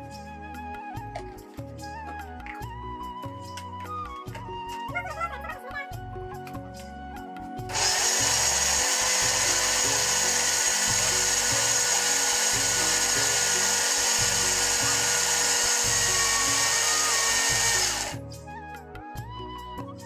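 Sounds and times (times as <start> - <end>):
background music with steady beat: 0.0 - 20.0
mixer grinder motor whining: 7.7 - 18.2.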